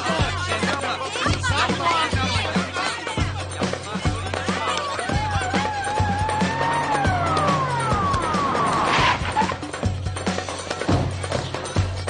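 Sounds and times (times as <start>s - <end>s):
music with bass beat: 0.0s - 12.0s
police siren wailing: 5.3s - 9.5s.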